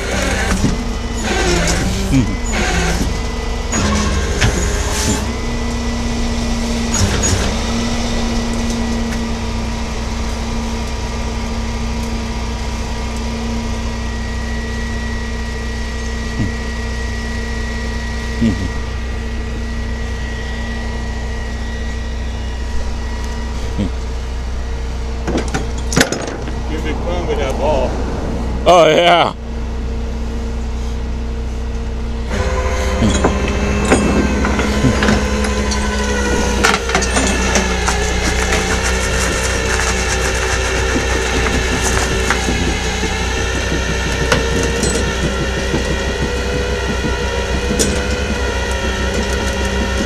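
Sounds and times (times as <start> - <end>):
vehicle engine idling: 0.0 - 50.0
faint steady whine: 2.2 - 50.0.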